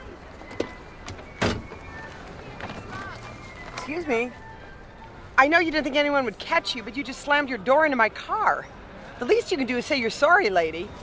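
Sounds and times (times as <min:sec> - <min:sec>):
parking lot background noise: 0:00.0 - 0:11.0.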